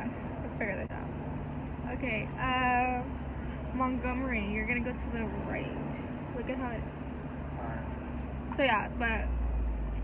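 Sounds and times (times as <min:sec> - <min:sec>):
car engine rumble: 0:00.0 - 0:10.0
road noise inside car: 0:00.0 - 0:10.0.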